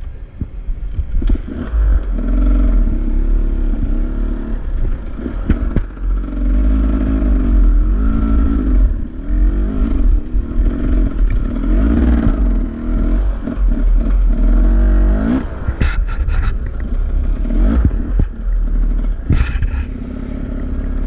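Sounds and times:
dirt bike engine revving: 0:01.2 - 0:21.0.

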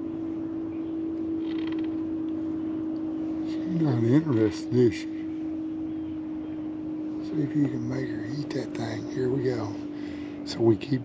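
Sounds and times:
electric motor humming: 0:00.0 - 0:11.0.

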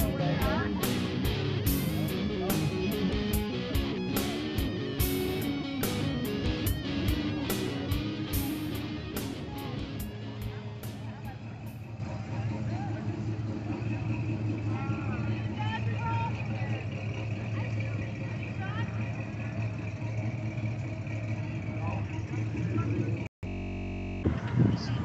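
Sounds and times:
car engine rumbling past: 0:00.0 - 0:23.3.

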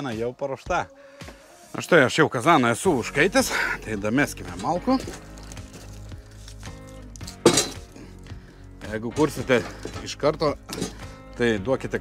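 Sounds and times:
quiet background music: 0:00.0 - 0:12.0
logs knocking against metal firebox: 0:07.3 - 0:08.0, 0:09.2 - 0:11.2.

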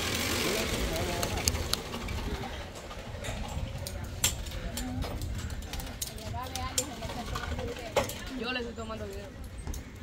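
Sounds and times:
faint voices: 0:00.3 - 0:10.0
wind buffeting microphone: 0:00.8 - 0:09.0.

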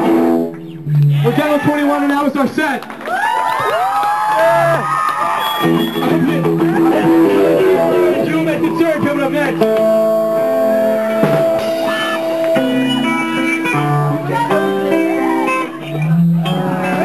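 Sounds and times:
electric guitars playing blues-rock: 0:00.0 - 0:03.0, 0:04.5 - 0:17.0.

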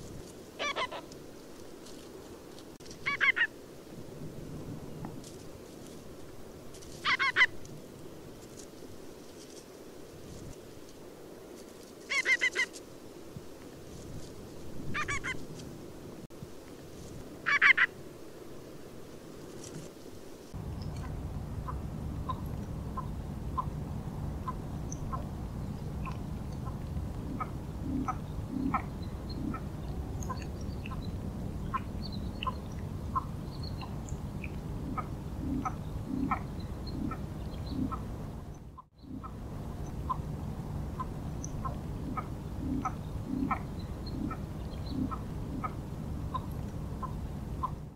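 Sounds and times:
low background rumble: 0:20.5 - 0:47.9
bird alarm call: 0:20.7 - 0:40.3, 0:41.0 - 0:47.9.

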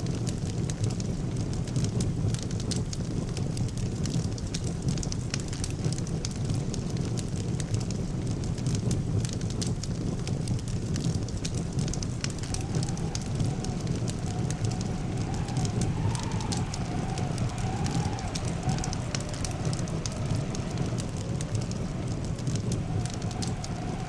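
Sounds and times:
fire crackling and popping: 0:00.0 - 0:24.0.

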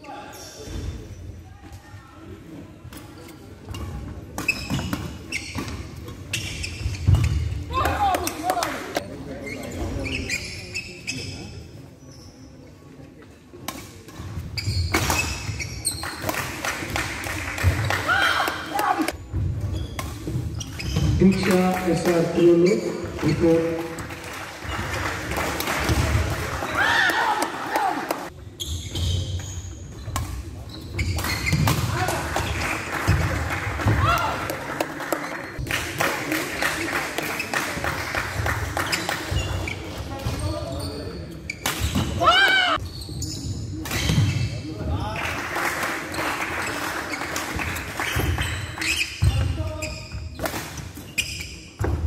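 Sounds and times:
shoes squeaking on floor: 0:03.2 - 0:07.7, 0:09.4 - 0:12.8, 0:14.2 - 0:16.2, 0:19.1 - 0:23.7, 0:28.3 - 0:31.8, 0:38.8 - 0:44.8, 0:48.0 - 0:52.0.

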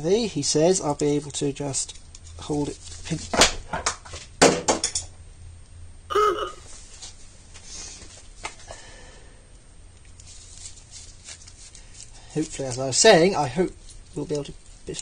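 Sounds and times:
grunt-like vocal sound: 0:06.1 - 0:06.6.

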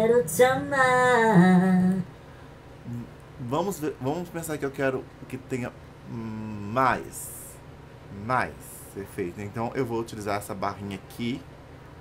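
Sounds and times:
faint hiss: 0:00.0 - 0:10.4.

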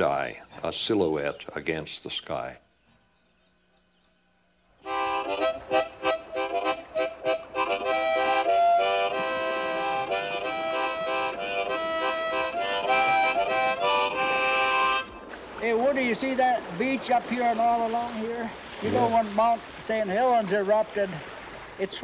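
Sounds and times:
harmonica playing: 0:04.8 - 0:15.1, 0:18.9 - 0:19.2.

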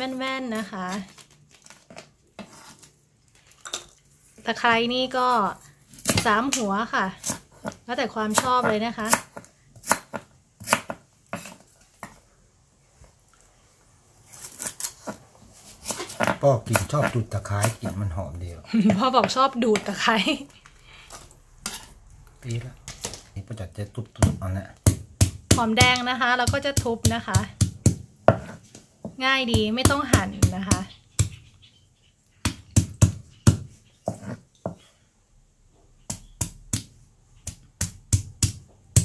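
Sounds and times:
knife chopping on wooden block: 0:07.2 - 0:12.2, 0:24.2 - 0:31.4, 0:32.4 - 0:34.8, 0:36.1 - 0:39.0.

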